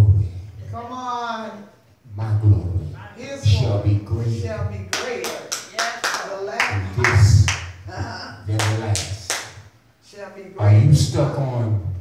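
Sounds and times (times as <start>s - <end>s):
hand claps: 4.9s - 7.8s, 8.6s - 9.6s
man's voice: 6.7s - 9.3s.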